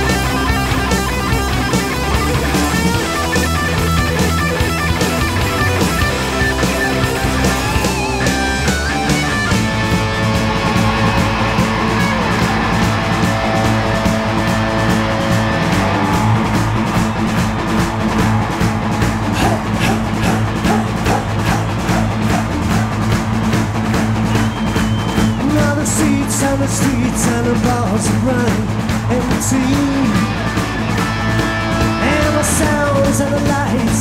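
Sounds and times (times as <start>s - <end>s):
bass: 0.0s - 34.0s
distorted electric guitar: 0.0s - 34.0s
steady drum beat: 0.0s - 34.0s.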